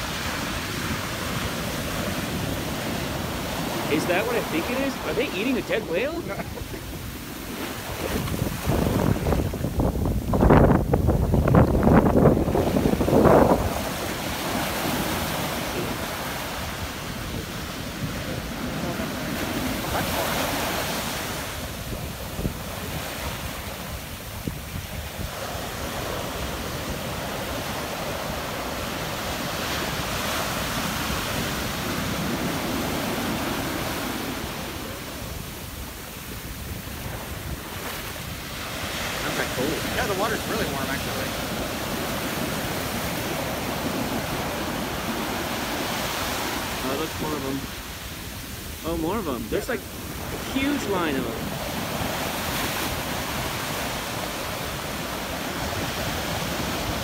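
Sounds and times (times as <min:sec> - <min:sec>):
waves breaking on beach: 0:00.0 - 0:57.0
wind buffeting microphone: 0:00.0 - 0:57.0.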